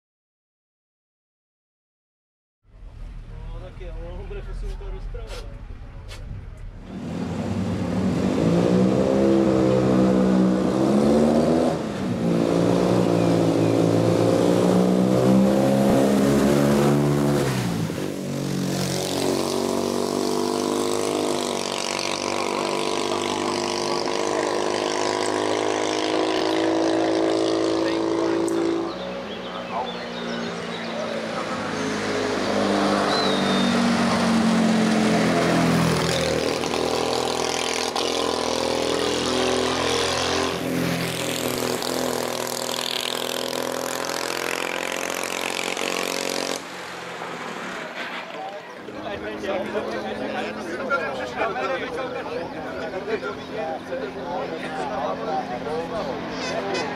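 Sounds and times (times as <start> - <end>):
racing car engine accelerating: 2.7 - 46.6.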